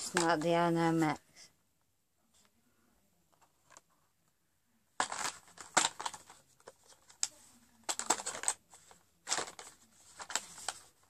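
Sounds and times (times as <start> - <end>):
plastic packaging crinkling: 5.0 - 10.9.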